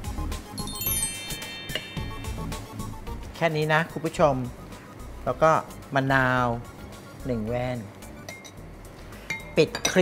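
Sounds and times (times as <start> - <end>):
glass dish and utensils clinking: 9.3 - 10.0.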